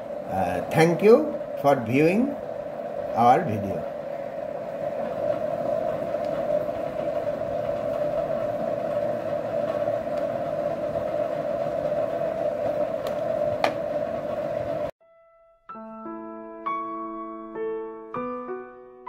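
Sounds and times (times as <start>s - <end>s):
steady mid-pitched hum: 0.0s - 14.9s.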